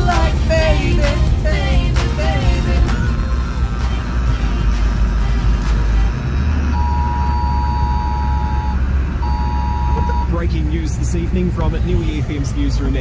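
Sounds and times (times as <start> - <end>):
music: 0.0 - 6.4
road rumble inside car: 0.0 - 13.0
long electronic tones: 6.4 - 10.4.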